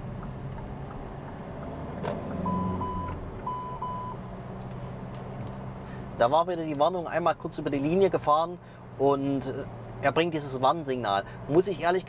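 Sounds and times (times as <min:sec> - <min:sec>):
engine and road noise: 0:00.0 - 0:12.0
short high warning beeps: 0:02.4 - 0:04.2.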